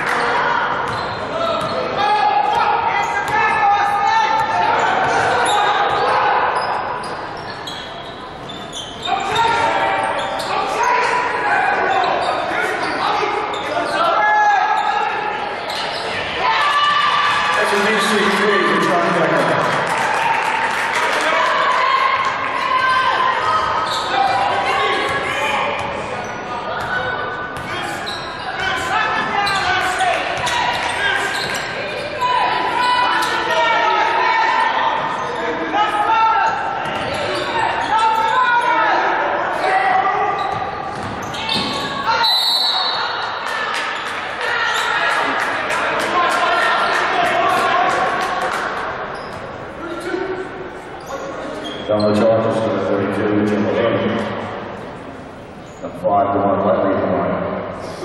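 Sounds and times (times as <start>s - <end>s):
voices echoing in a hall: 0.0s - 58.0s.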